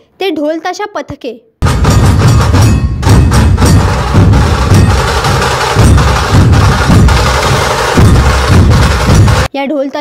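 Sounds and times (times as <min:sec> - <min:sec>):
barrel drums beaten with sticks: 0:01.6 - 0:09.5.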